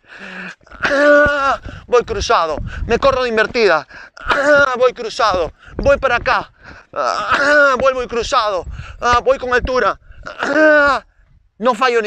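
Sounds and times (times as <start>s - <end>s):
man's effort grunt: 10.3s - 11.0s.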